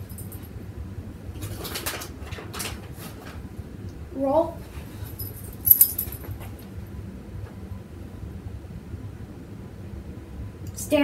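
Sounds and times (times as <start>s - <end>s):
metal chain collar jangling: 5.1s - 6.3s.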